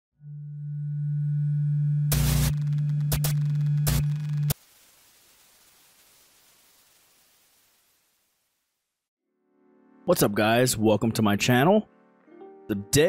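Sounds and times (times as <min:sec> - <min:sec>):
low electronic hum: 0:00.2 - 0:04.6
static bursts: 0:02.1 - 0:08.6
faint hiss: 0:04.6 - 0:09.1.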